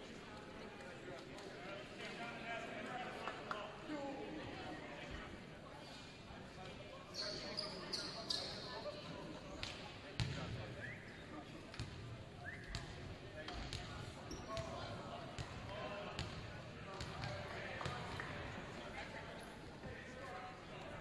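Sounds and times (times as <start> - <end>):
players' voices chattering: 0.0 - 21.0
sneaker squeaks: 7.1 - 8.7, 14.2 - 14.7.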